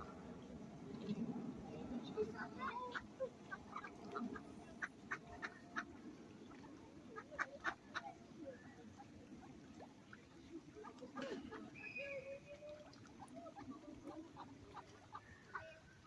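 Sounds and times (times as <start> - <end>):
ducks quacking: 2.3 - 9.9, 12.8 - 16.0.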